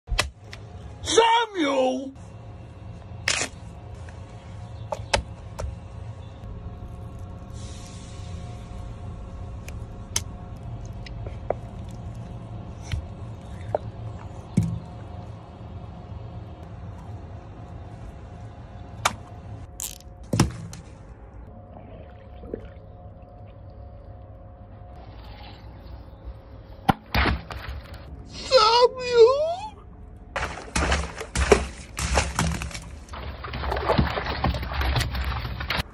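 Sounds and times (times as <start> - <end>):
steady low hum: 2.1 - 28.5
high-pitched voice wailing: 28.4 - 29.8.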